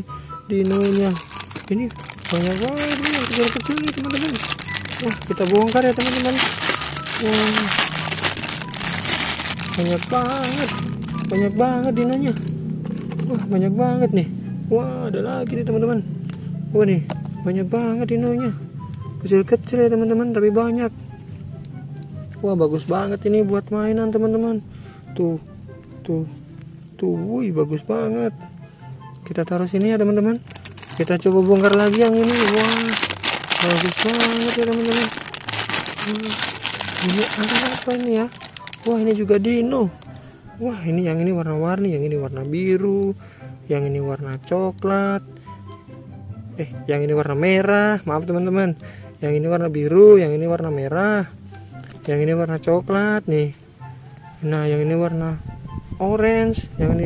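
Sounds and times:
plastic bag crinkling: 0.6s - 13.4s, 30.4s - 39.3s.

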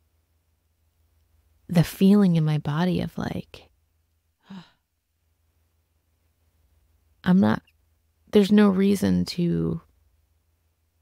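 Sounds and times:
woman sighing: 4.4s - 4.8s.

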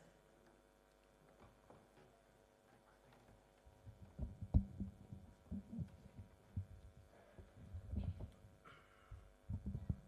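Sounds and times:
faint low thumps and knocks: 3.9s - 8.4s.

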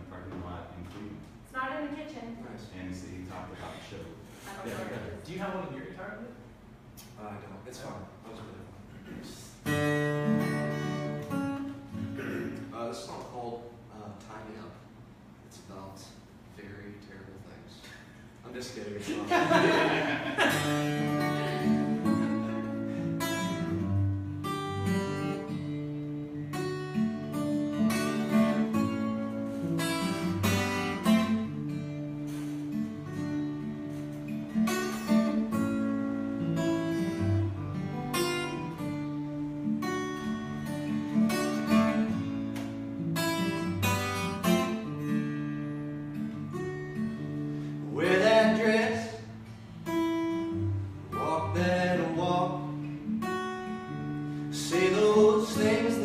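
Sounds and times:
acoustic guitar strumming: 9.6s - 12.8s, 19.5s - 56.0s.

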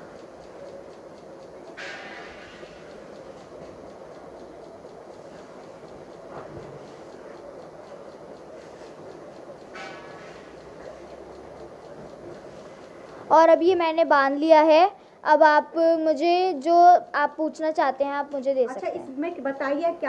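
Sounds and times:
room hum: 0.0s - 20.0s.

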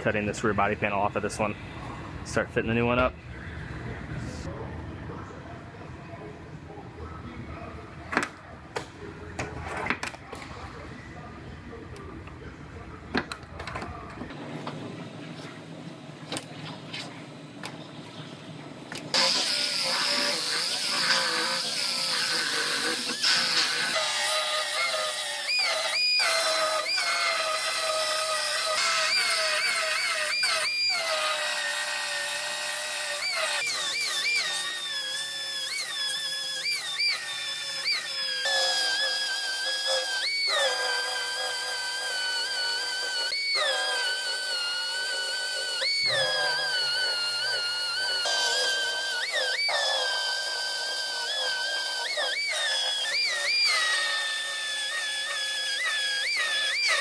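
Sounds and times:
belt sander grinding metal: 19.2s - 57.0s.

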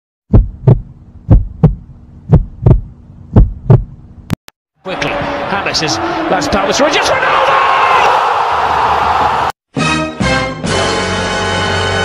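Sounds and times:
heartbeat double thumps: 0.3s - 4.0s.

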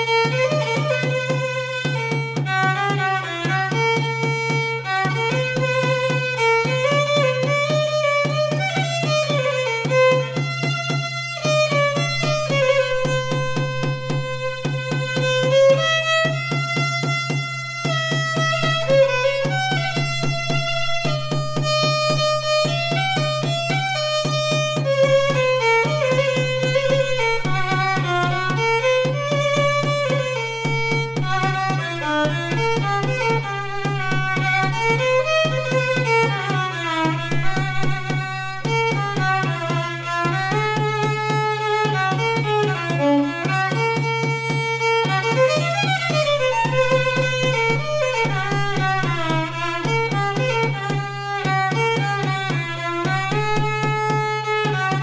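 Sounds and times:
rhythmic accompaniment: 0.0s - 55.0s
violin melody: 0.0s - 55.0s.

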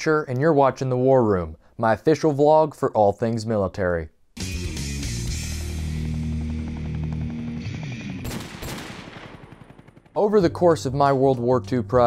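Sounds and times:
automatic gunfire: 8.2s - 10.2s.

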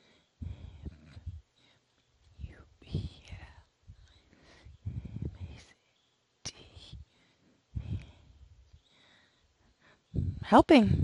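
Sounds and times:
woman whispering: 0.0s - 7.2s, 10.1s - 11.0s.

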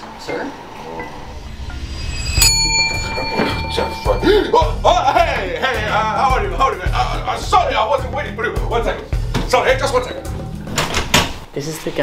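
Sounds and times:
service bell ding: 1.0s - 4.8s.

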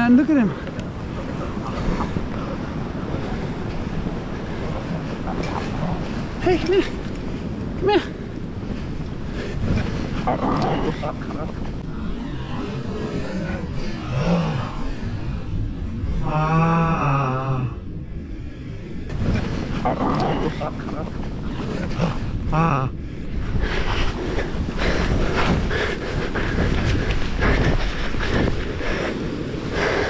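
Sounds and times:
seal colony calling: 0.0s - 18.1s
wind on microphone: 0.0s - 30.0s.

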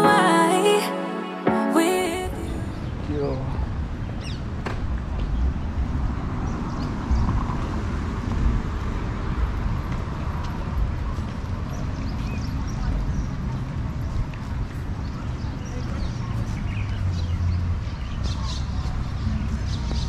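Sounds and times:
wind: 0.0s - 20.0s
traffic rumble: 2.4s - 20.0s.

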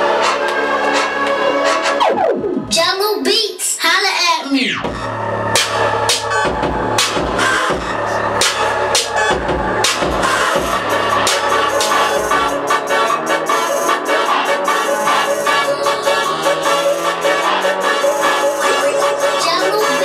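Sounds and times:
hip-hop beat over speakers: 0.0s - 20.0s
falling pitch sweep effect: 4.9s - 19.3s.

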